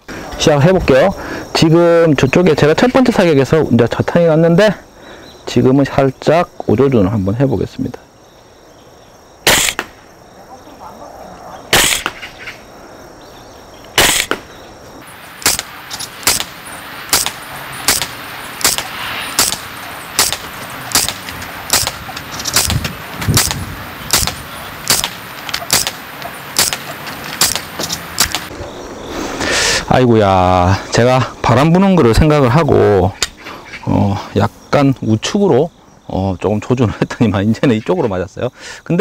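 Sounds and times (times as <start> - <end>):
airsoft rifle shots: 9.4 - 10.0, 11.7 - 12.3, 14.0 - 14.5, 15.4 - 28.5.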